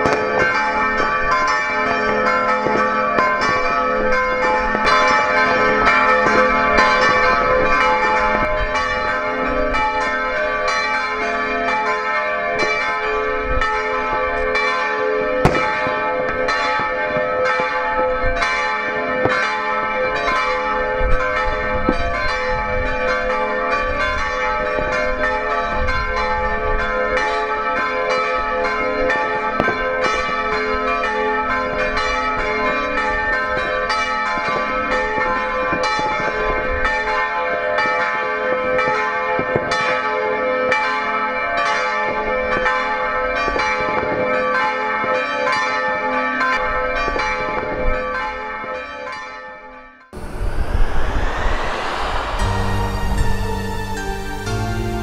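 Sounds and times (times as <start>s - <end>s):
church bells pealing: 0.0s - 55.0s.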